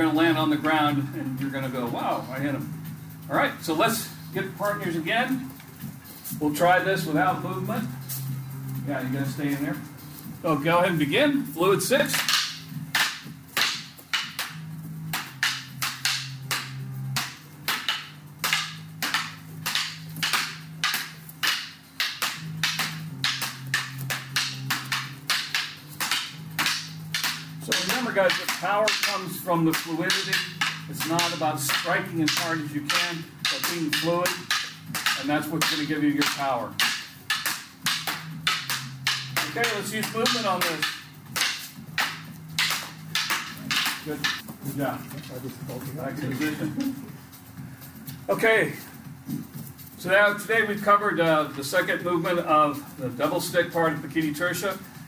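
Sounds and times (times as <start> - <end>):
fighting sticks clacking: 11.2 - 54.9.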